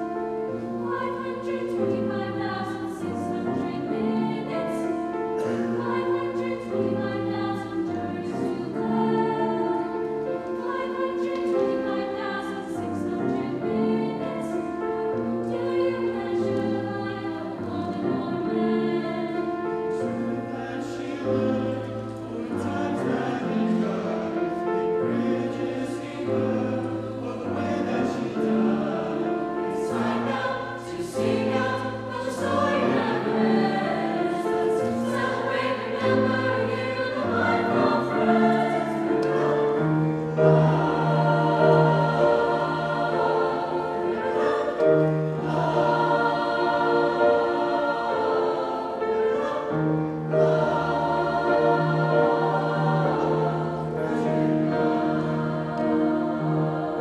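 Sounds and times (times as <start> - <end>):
choir singing: 0.0 - 57.0
piano accompaniment: 0.0 - 57.0.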